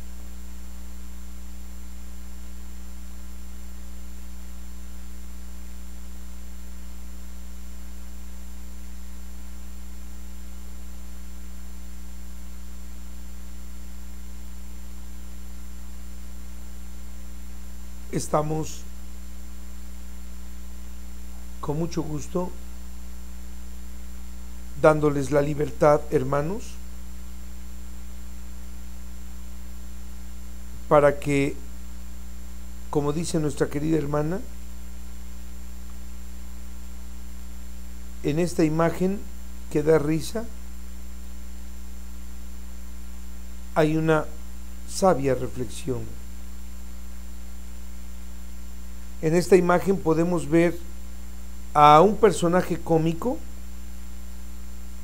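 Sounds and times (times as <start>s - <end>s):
low electrical hum: 0.0s - 55.0s.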